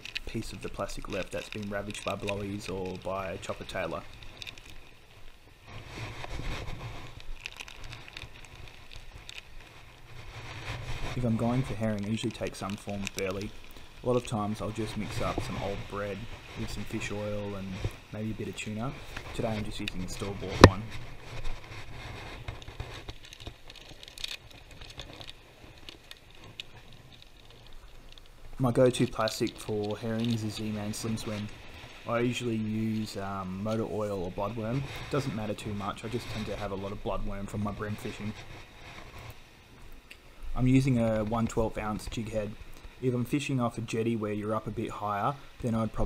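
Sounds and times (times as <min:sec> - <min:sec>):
fishing gear clicking on rocks: 0:00.0 - 0:05.4, 0:06.3 - 0:10.1, 0:11.1 - 0:33.9
wind rumbling on microphone: 0:00.0 - 0:46.0.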